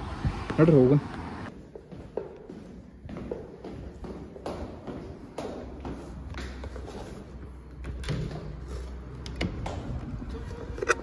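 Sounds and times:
footsteps on hard floor: 0:01.5 - 0:10.8.

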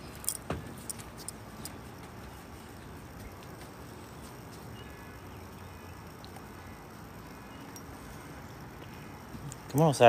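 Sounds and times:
metallic jingle: 0:00.0 - 0:01.9.

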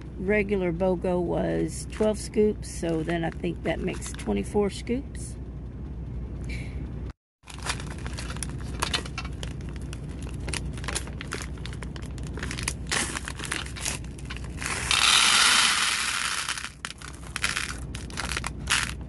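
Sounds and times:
plastic bag crinkling: 0:07.4 - 0:19.0
beads clicking and rattling: 0:12.3 - 0:19.0
beads pouring into glass dish: 0:14.6 - 0:19.0.

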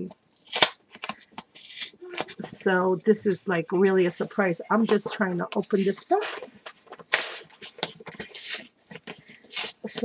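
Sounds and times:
cardboard tearing and rustling: 0:05.7 - 0:08.8, 0:09.4 - 0:10.0.

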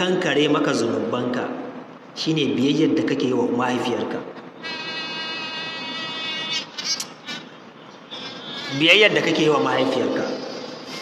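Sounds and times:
high-pitched buzz: 0:04.5 - 0:11.0.

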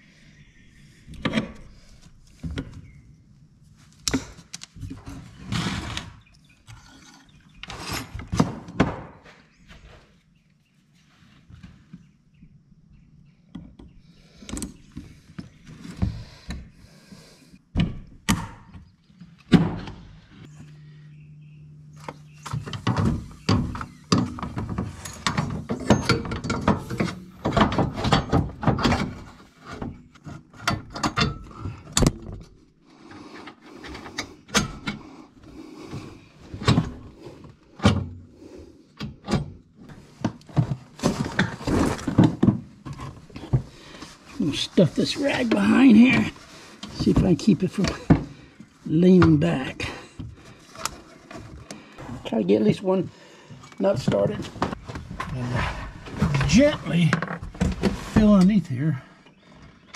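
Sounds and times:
steady low hum: 0:11.7 - 0:59.8.

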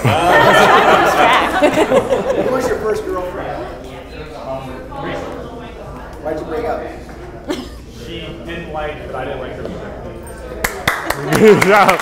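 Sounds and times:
group voices: 0:00.0 - 0:05.8.

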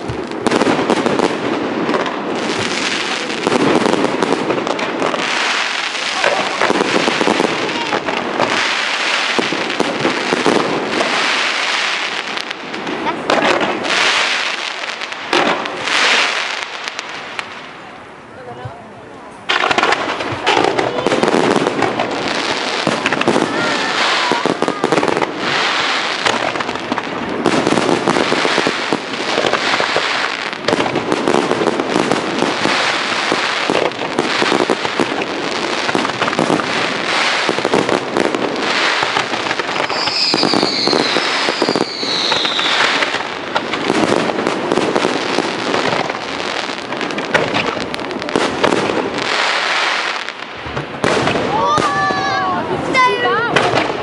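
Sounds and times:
fireworks bangs and crackling: 0:00.0 - 0:54.0
falling firework whistles: 0:38.6 - 0:44.0.

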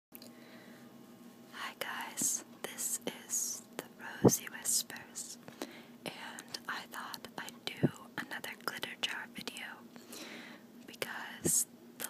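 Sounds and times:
faint steady hum: 0:00.1 - 0:12.0
person whispering: 0:10.9 - 0:11.7.

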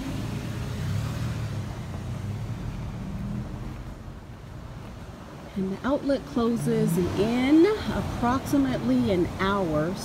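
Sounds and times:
car driving past: 0:00.0 - 0:04.8.

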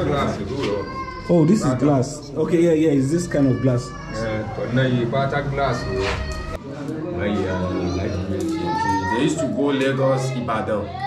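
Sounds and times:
men talking: 0:00.0 - 0:11.0.

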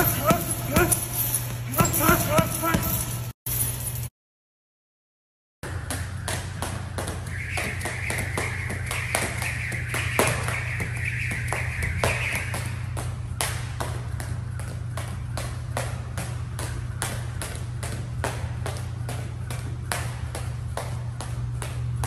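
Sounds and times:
jump rope slapping floor: 0:00.0 - 0:03.2, 0:05.6 - 0:22.0.

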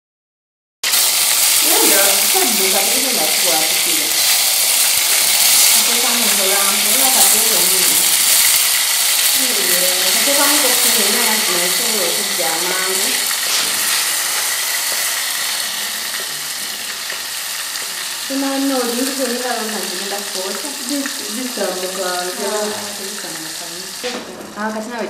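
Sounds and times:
food sizzling in a pot: 0:00.8 - 0:25.0
women talking: 0:01.6 - 0:04.2, 0:05.7 - 0:08.2, 0:09.4 - 0:13.2, 0:18.3 - 0:25.0.

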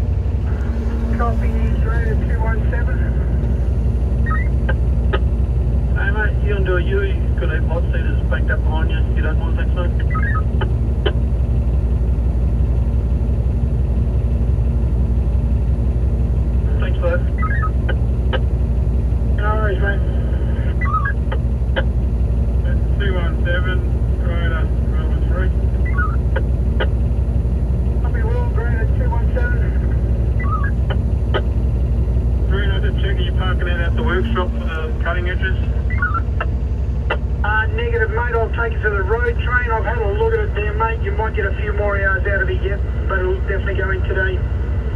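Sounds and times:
diesel engine idling: 0:00.0 - 0:44.9
two-way radio chatter: 0:06.0 - 0:11.2, 0:19.4 - 0:21.9, 0:28.0 - 0:31.6, 0:32.5 - 0:44.4.

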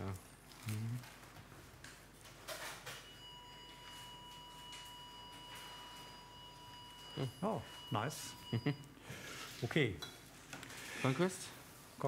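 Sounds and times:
steady high beep: 0:03.1 - 0:09.0.

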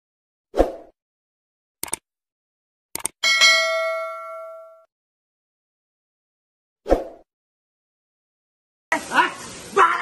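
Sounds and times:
quick mouse clicks: 0:01.8 - 0:02.0, 0:03.0 - 0:03.2
notification bell ding: 0:03.2 - 0:04.9.

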